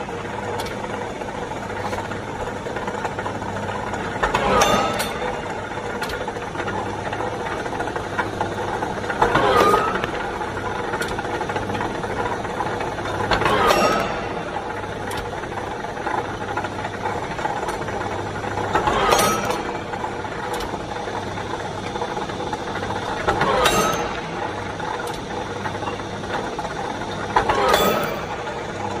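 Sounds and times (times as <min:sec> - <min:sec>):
metallic clack of rebar cut: 0:13.3 - 0:14.5, 0:18.8 - 0:19.8, 0:23.3 - 0:24.3, 0:27.4 - 0:28.4.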